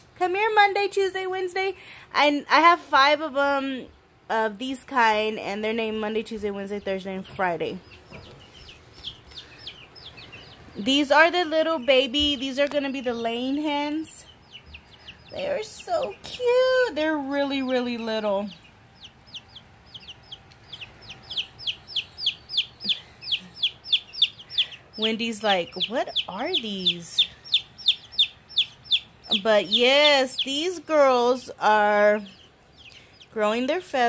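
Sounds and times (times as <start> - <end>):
chicks peeping: 4.7 - 34.0.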